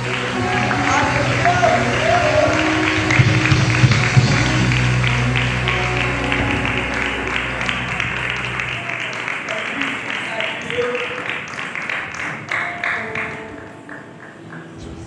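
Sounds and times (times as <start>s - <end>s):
hand clapping: 0.0s - 15.0s.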